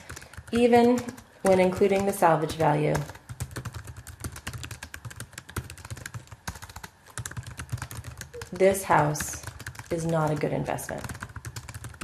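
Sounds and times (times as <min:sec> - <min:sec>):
typing on computer keyboard: 0:00.0 - 0:12.0.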